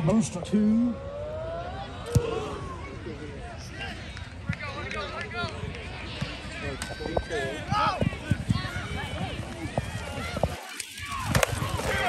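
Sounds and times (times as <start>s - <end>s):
spectators shouting: 6.2s - 12.0s.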